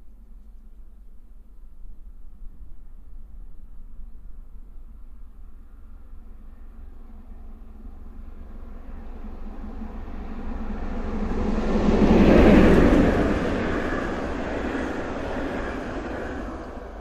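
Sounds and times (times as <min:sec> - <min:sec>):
steam train passing at speed: 0:06.7 - 0:17.0.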